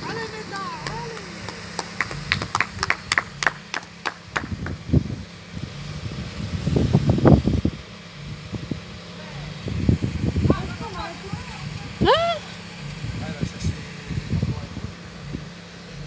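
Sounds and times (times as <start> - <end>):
fire engine motor humming: 0.0 - 16.0
rhythmic hand clapping: 0.4 - 4.9.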